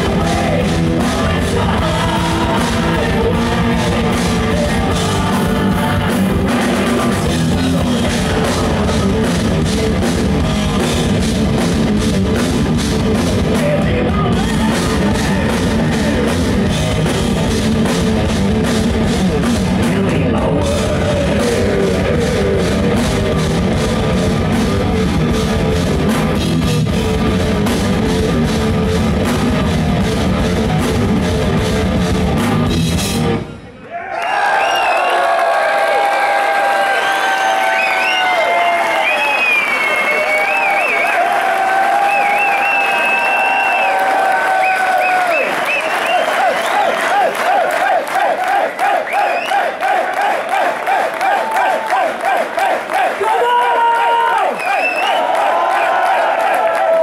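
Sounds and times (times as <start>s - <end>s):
heavy metal band playing: 0.0s - 33.7s
audience singing together: 0.1s - 7.4s, 46.4s - 53.2s.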